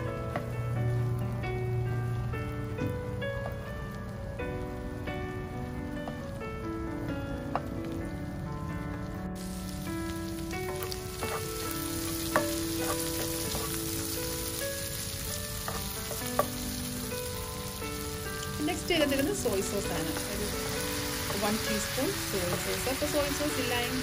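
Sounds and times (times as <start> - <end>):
food sizzling in frying pan: 0.0 - 24.0
soft melody: 0.0 - 24.0.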